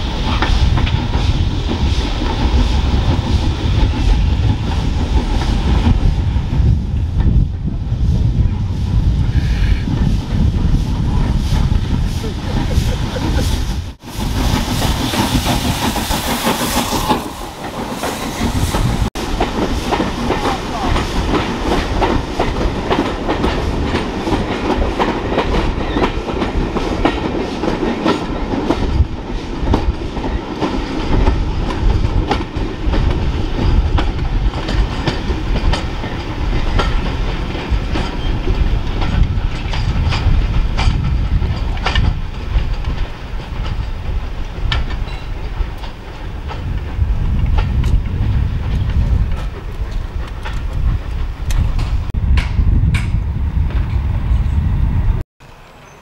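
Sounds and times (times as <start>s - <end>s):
train wheels clattering over rails: 0.0s - 8.5s, 9.4s - 54.6s
locomotive steam hiss: 8.8s - 24.8s.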